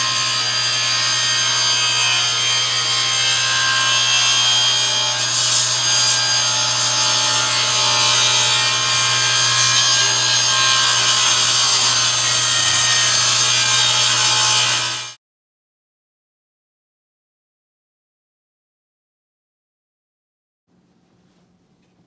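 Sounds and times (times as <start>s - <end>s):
table saw cutting wood: 0.0s - 15.2s.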